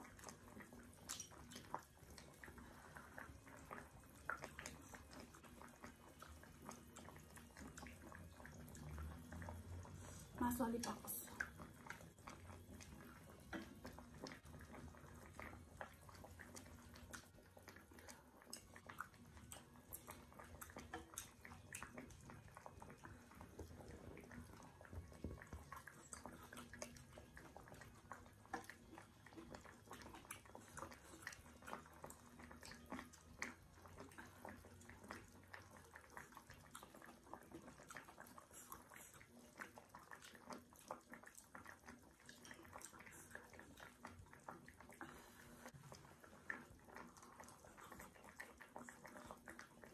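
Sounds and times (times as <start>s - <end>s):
chewing and slurping: 0.0s - 49.9s.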